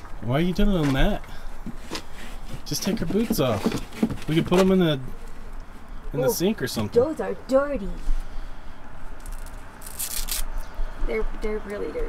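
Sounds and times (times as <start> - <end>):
soft rustling: 0.8 - 5.9
boot pulled off rasping rip: 9.2 - 10.5.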